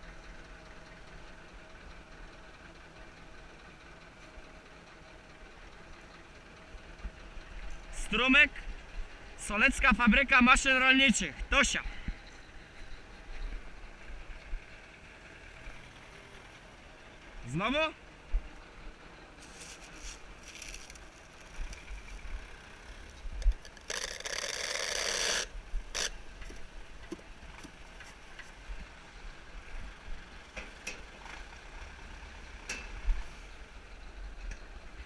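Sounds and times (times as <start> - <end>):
tractor engine rumbling: 0.0 - 35.0.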